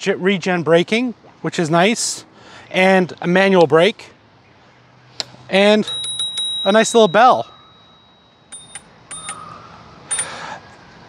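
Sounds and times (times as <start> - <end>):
scooter bell dings: 5.8 - 10.4.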